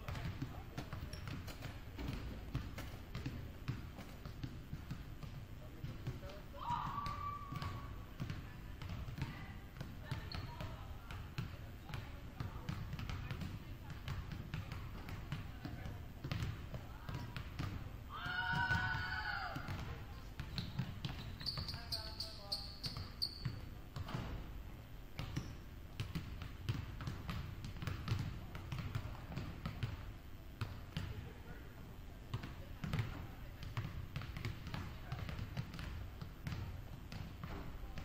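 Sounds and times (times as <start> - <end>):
basketballs bouncing on hardwood floor: 0.0 - 24.5, 25.2 - 31.3, 32.3 - 38.0.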